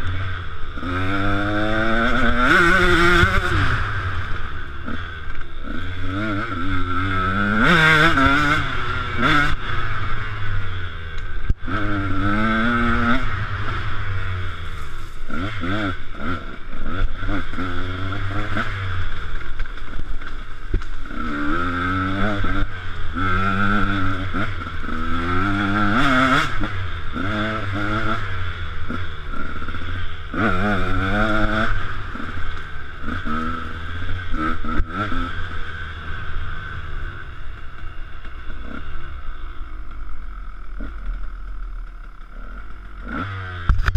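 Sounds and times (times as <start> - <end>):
two-stroke motorcycle engine revving: 0.0 - 43.9.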